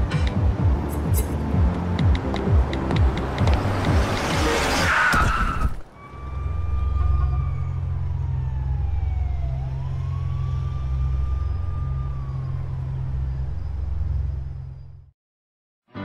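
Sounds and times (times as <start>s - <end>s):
siren wailing: 4.8s - 14.2s.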